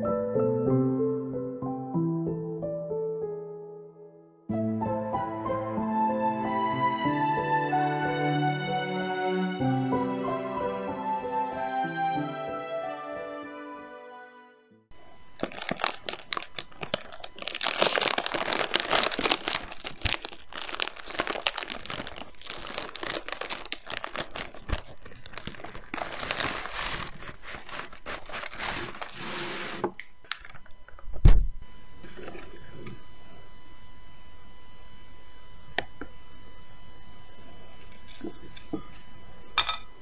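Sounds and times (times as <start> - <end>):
plastic wrapper crinkling: 15.0 - 31.0
high-pitched whine: 28.8 - 40.0.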